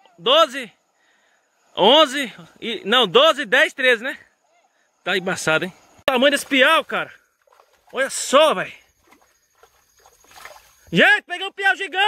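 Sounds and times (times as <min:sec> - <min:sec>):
rustling and scuffing in grass: 0:08.9 - 0:10.9.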